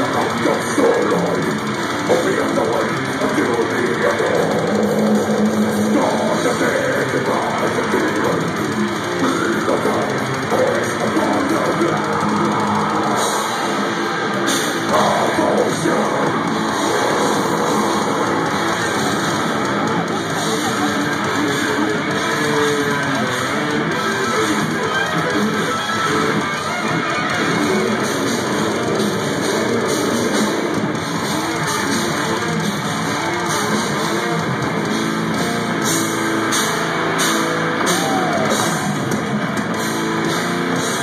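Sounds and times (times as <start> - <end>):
bass guitar: 0.0 - 41.0
death metal band playing live: 0.0 - 41.0
distorted electric guitars riffing: 0.0 - 41.0
drums: 0.0 - 41.0.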